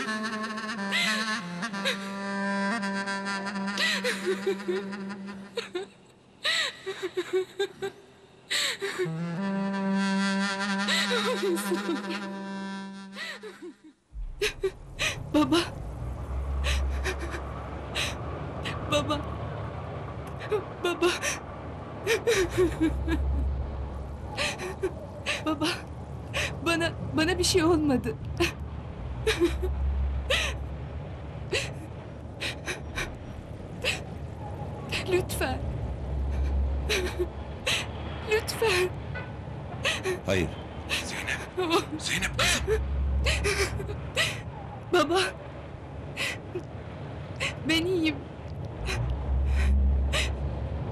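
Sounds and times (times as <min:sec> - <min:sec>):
woman crying and sobbing: 0:00.0 - 0:09.2, 0:10.6 - 0:15.8, 0:16.6 - 0:19.3, 0:20.3 - 0:21.4, 0:22.0 - 0:23.5, 0:24.4 - 0:28.6, 0:29.2 - 0:30.6, 0:31.5 - 0:31.8, 0:32.4 - 0:33.2, 0:33.8 - 0:34.1, 0:34.9 - 0:35.6, 0:36.3 - 0:38.9, 0:39.8 - 0:40.2, 0:40.9 - 0:45.4, 0:46.2 - 0:46.6, 0:47.4 - 0:48.2, 0:48.9 - 0:50.4
low rumble: 0:14.1 - 0:38.3, 0:42.2 - 0:50.9.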